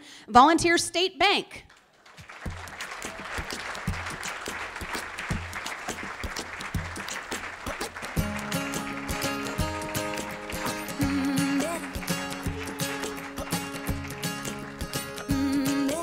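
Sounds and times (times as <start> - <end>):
audience applauding: 1.7 - 16.0
music with bass beat: 2.5 - 16.0.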